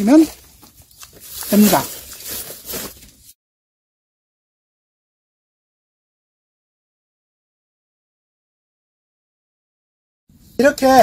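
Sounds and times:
dry pine needles rustling: 0:00.0 - 0:03.4.

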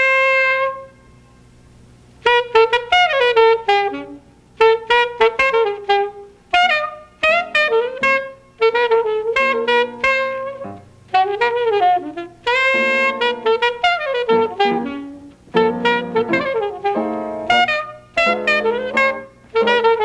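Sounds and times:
alto saxophone bebop phrases: 0:00.0 - 0:01.0, 0:02.2 - 0:20.0
piano accompaniment: 0:07.3 - 0:20.0.

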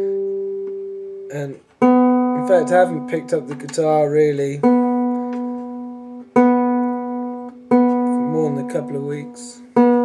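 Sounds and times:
out of tune guitar ringing: 0:00.0 - 0:10.0.

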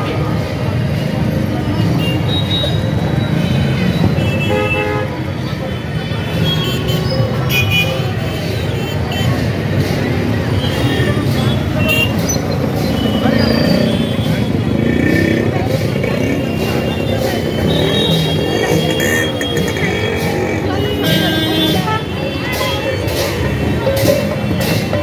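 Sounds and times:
crowd chatter: 0:00.0 - 0:25.0
street traffic: 0:00.0 - 0:25.0
vehicle horns honking: 0:01.8 - 0:09.4, 0:10.6 - 0:15.5, 0:16.1 - 0:24.7.

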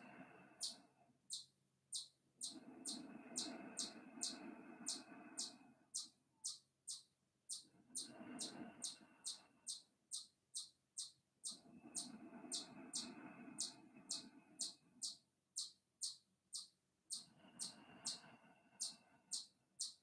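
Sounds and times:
bird chirping: 0:00.6 - 0:20.0.

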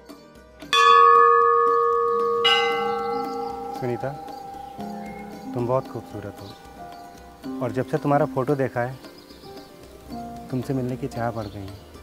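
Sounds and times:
temple bell ringing: 0:00.7 - 0:07.4.

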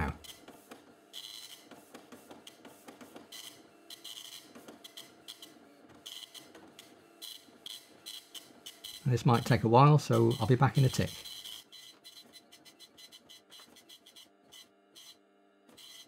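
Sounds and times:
dot-matrix printer printing: 0:00.0 - 0:16.0.

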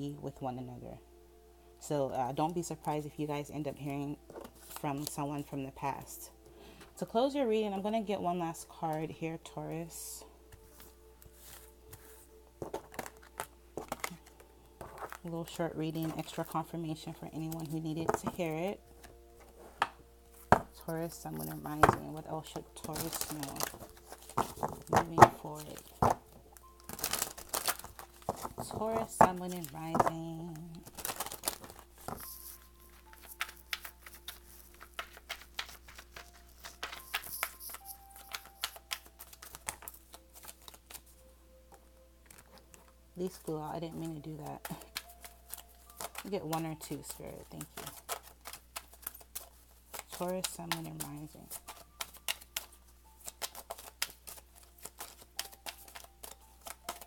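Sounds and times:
cards being shuffled: 0:03.8 - 0:05.5, 0:10.5 - 0:57.0
sharp card clicks and snaps: 0:47.6 - 0:57.0.

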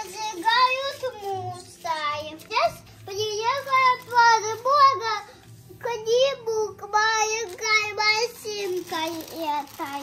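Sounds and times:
young boy talking: 0:00.0 - 0:10.0.

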